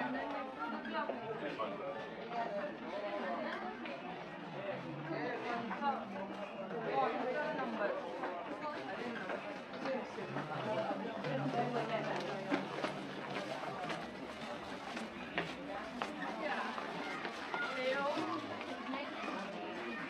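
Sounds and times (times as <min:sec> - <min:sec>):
shoppers chattering: 0:00.0 - 0:20.0.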